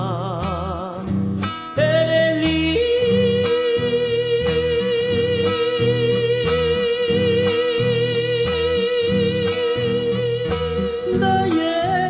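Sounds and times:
man singing a folk ballad: 0.0 - 12.0
strummed acoustic guitar: 0.0 - 12.0.

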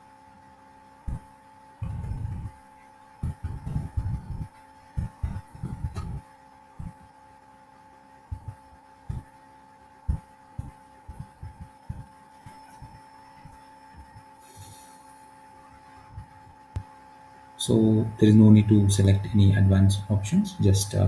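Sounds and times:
faint electrical hum: 0.0 - 21.0.

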